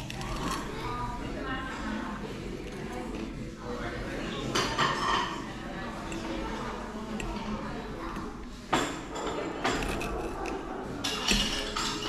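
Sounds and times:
low background chatter: 0:00.0 - 0:12.0
cutlery clinking on plate: 0:08.9 - 0:12.0.

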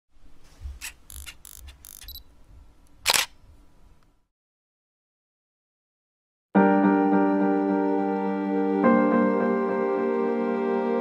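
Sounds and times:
camera shutter click: 0:00.8 - 0:02.2, 0:03.0 - 0:03.4.

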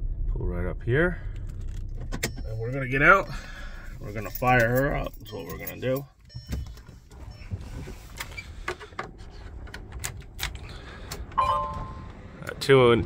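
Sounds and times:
electronic warning beep: 0:11.4 - 0:12.1.

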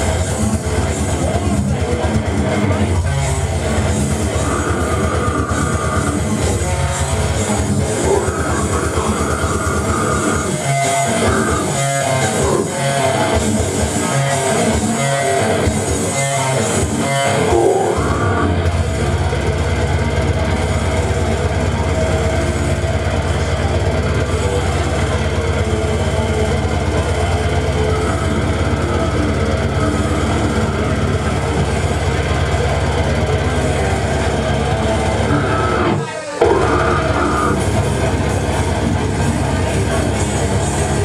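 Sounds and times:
loud death metal music: 0:00.0 - 0:41.0.

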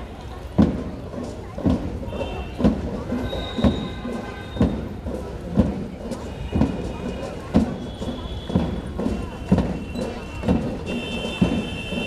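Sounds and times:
crowd chatter: 0:00.0 - 0:12.0
drum beating slow march: 0:00.0 - 0:12.0.

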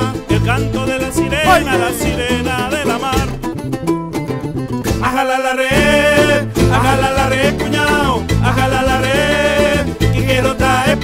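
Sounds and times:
man singing: 0:00.0 - 0:03.5, 0:04.9 - 0:11.0
bass guitar: 0:00.0 - 0:11.0
fast-strummed small guitars: 0:00.0 - 0:11.0.

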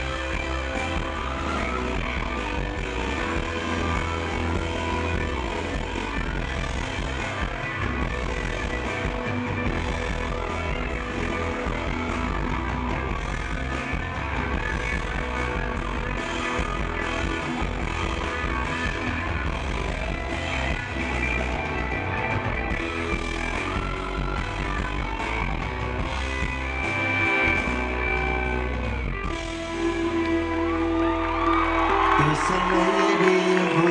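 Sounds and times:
bass guitar: 0:00.0 - 0:33.9
drums: 0:00.0 - 0:33.9
electric guitars: 0:00.0 - 0:33.9.

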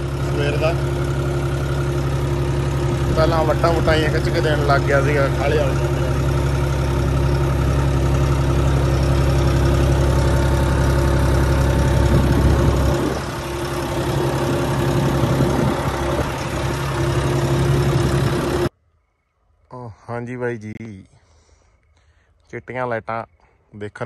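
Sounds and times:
tractor diesel engine running: 0:00.0 - 0:18.7.

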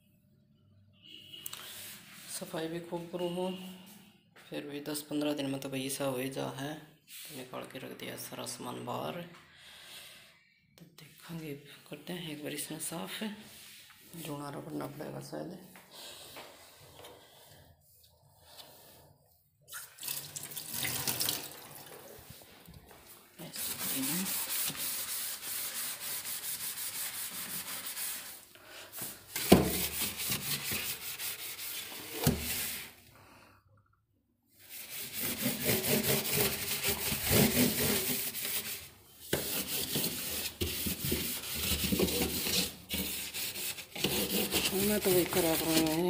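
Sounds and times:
tap water running onto metal shelf: 0:20.0 - 0:22.0
cloth scrubbing plastic: 0:22.0 - 0:33.0, 0:34.6 - 0:46.0.

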